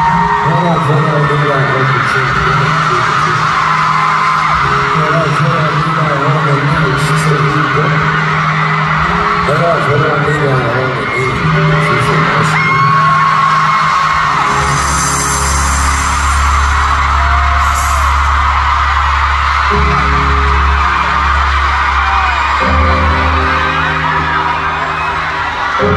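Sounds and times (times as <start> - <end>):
crowd screaming and singing along: 0.0 - 25.9
live concert music low chords: 0.0 - 25.9.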